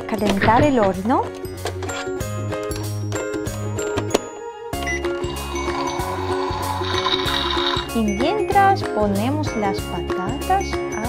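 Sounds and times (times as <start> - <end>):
children's music: 0.0 - 11.0
electronic hissing sound effect: 5.3 - 7.9.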